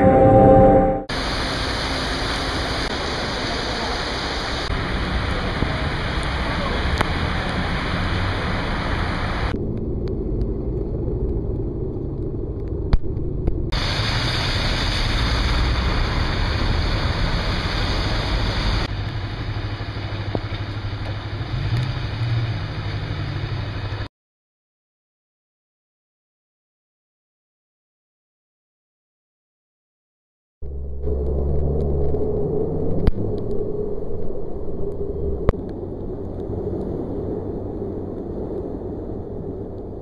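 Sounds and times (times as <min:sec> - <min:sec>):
low rumble of city traffic: 0:01.0 - 0:24.1, 0:30.6 - 0:40.0
heavy rain hissing: 0:01.1 - 0:09.5, 0:13.8 - 0:22.9.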